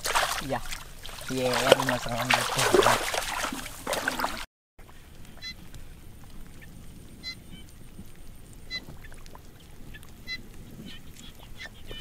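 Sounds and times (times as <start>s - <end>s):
bird calling: 10.2s - 12.0s.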